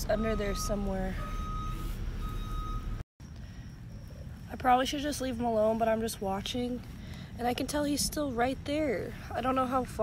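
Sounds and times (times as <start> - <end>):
reversing alarm beeping: 0.0 - 5.3.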